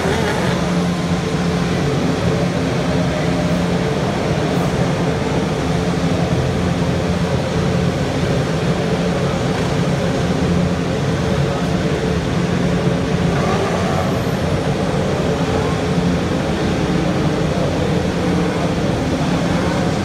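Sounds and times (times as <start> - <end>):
racing car engines droning: 0.0 - 20.0.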